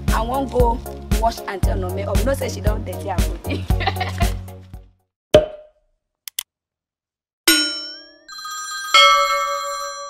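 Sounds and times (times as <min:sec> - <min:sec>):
bell-like ding: 0:07.5 - 0:08.4.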